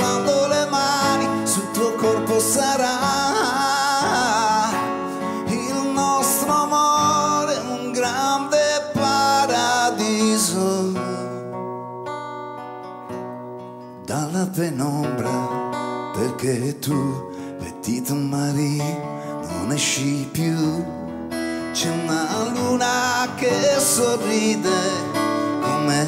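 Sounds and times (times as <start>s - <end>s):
man singing: 0.0s - 11.6s, 14.0s - 26.0s
strummed acoustic guitar: 0.0s - 26.0s.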